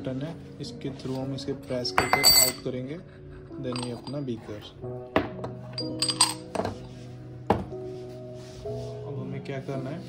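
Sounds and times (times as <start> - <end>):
background music: 0.0 - 10.0
metal clinks and knocks: 1.8 - 2.7, 3.6 - 4.2, 5.4 - 6.8.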